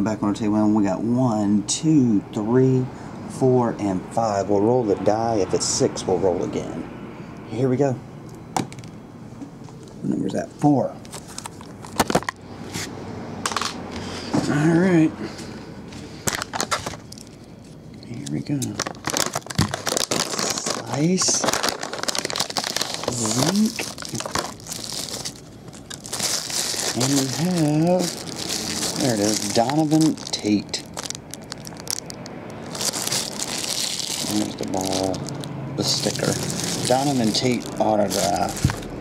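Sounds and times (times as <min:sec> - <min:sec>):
plastic and foil packaging crinkling: 0:16.2 - 0:17.5, 0:18.4 - 0:39.0.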